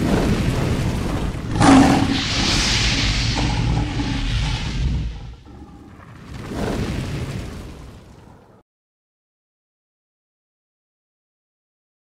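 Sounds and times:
low fiery rumble: 0:00.0 - 0:08.6
sudden boom: 0:00.5 - 0:06.4
hissing swell: 0:01.3 - 0:06.1.

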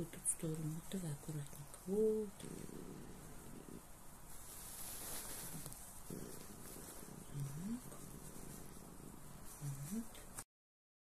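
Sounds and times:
cat purring: 0:00.0 - 0:10.5.

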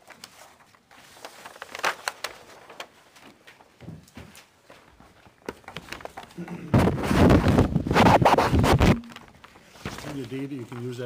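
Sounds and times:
paper sheets rustling and crinkling: 0:00.0 - 0:11.0.

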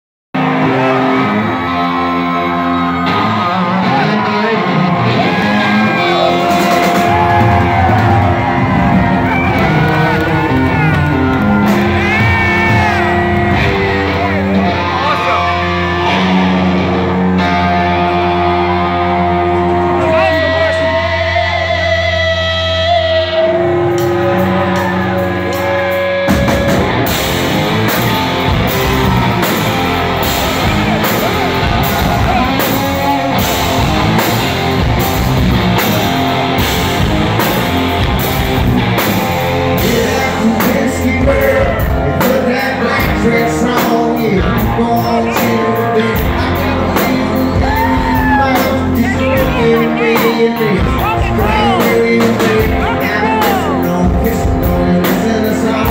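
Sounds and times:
drums: 0:00.4 - 0:55.9
guitars bending notes: 0:00.4 - 0:55.9
live rock band: 0:00.4 - 0:55.9.

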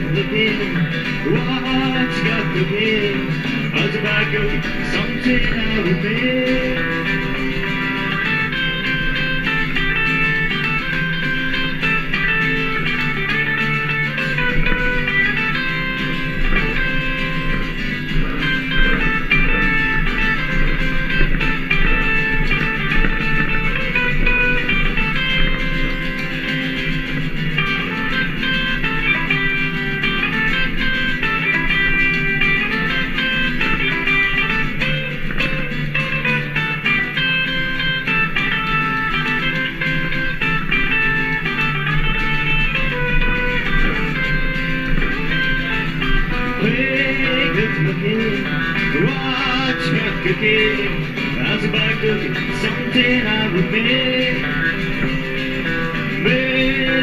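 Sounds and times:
electric lead guitar: 0:00.0 - 0:57.0
strummed acoustic guitar: 0:00.0 - 0:57.0.

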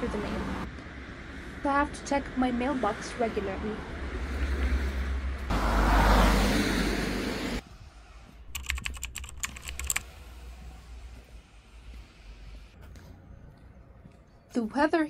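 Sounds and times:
quick sharp clicks: 0:08.5 - 0:10.1.

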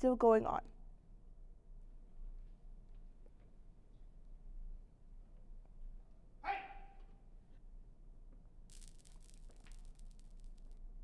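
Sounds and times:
high-pitched yelp: 0:06.4 - 0:07.0
candies scattering on concrete floor: 0:08.7 - 0:11.0.

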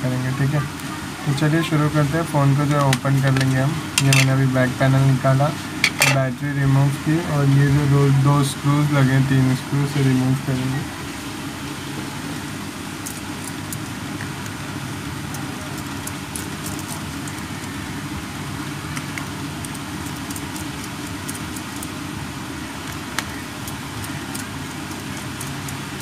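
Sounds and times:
low background hum: 0:00.0 - 0:26.0.

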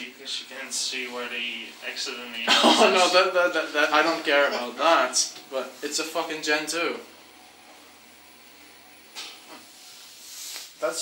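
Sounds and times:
faint hiss with low hum: 0:00.0 - 0:11.0.

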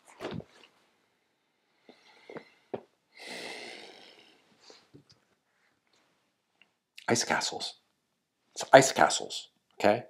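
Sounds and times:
man sighing: 0:03.2 - 0:04.4.

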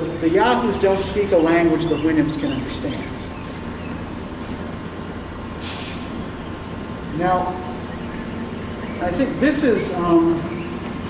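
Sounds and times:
ventilation rumble: 0:00.0 - 0:11.0
short hiss: 0:05.6 - 0:06.1.

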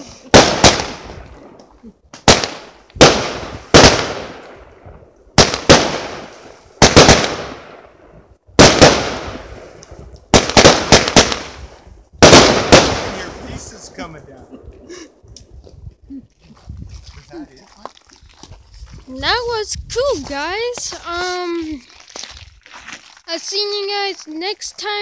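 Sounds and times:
fireworks bangs with echoes: 0:00.2 - 0:01.6, 0:02.2 - 0:04.7, 0:05.4 - 0:08.0, 0:08.6 - 0:13.8.

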